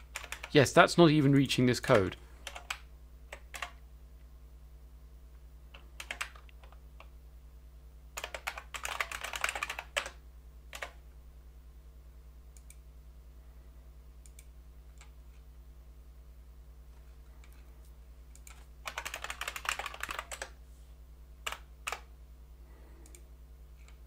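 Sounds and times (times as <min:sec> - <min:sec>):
computer keyboard typing: 0:00.0 - 0:00.7, 0:01.9 - 0:03.8, 0:05.7 - 0:07.1, 0:08.2 - 0:11.0, 0:18.4 - 0:20.6, 0:21.4 - 0:22.1.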